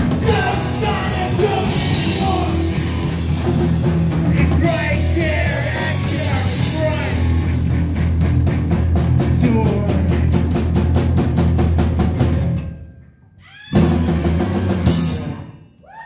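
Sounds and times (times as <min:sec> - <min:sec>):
drums fast beat: 0:00.0 - 0:12.5, 0:13.8 - 0:15.4
live band playing: 0:00.0 - 0:12.8, 0:13.7 - 0:15.7.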